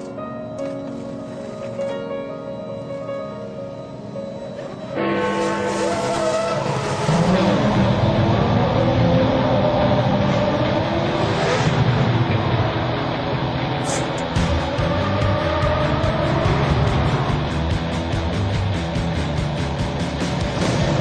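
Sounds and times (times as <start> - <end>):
background music: 0.0 - 21.0
racing car engine revving: 5.8 - 21.0.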